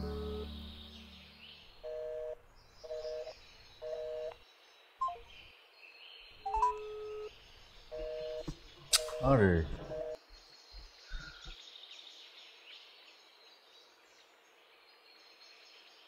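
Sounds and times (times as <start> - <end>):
telephone busy signal: 0.0 - 0.5, 1.8 - 4.3, 7.9 - 8.4, 9.1 - 10.2
short higher beeps: 0.0 - 1.2
long low single tone: 0.0 - 2.4
sharp click: 8.9 - 9.2.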